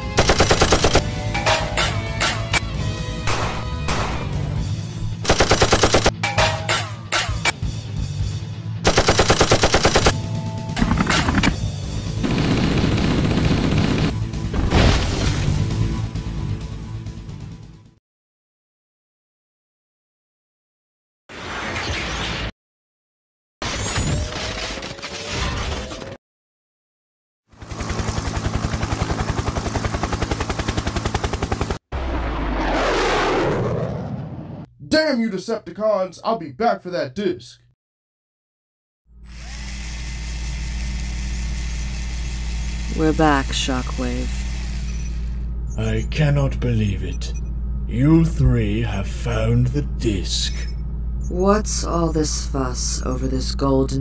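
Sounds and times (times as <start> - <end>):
background music: 0.0 - 5.3
automatic gunfire: 0.1 - 1.1, 5.2 - 6.2, 8.8 - 10.2, 12.2 - 14.2.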